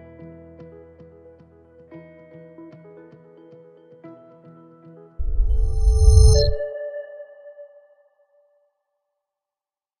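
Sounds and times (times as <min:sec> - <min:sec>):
bright pinging chime: 0:05.2 - 0:06.7.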